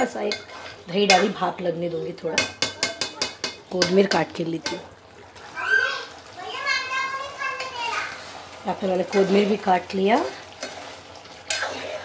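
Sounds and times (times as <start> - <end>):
child squealing: 5.5 - 8.1.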